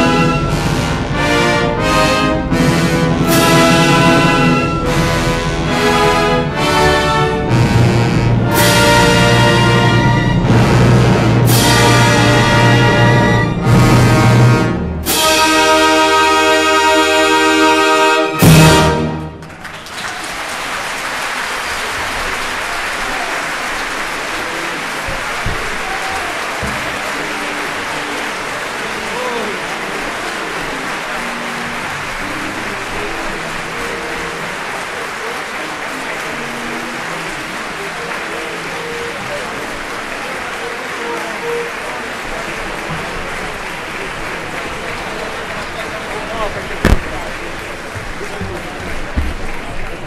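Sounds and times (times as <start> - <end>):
audience applauding: 0.0 - 50.0
shouts from audience: 25.5 - 27.0.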